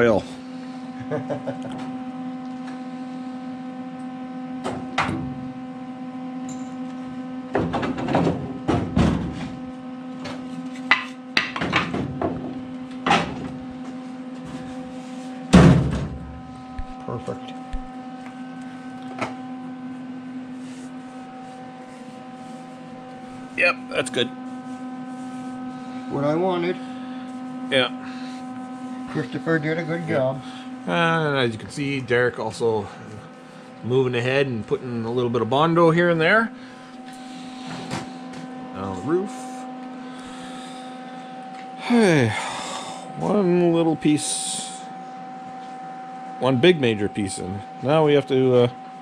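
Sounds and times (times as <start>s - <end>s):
electrical hum: 0.0s - 49.0s.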